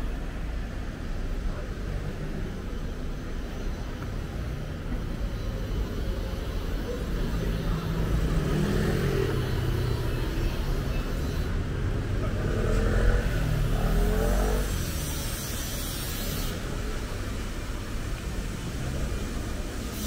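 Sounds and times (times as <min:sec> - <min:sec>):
vehicle engines passing: 0:00.0 - 0:20.0
vehicle accelerating: 0:07.3 - 0:11.1, 0:11.7 - 0:15.4.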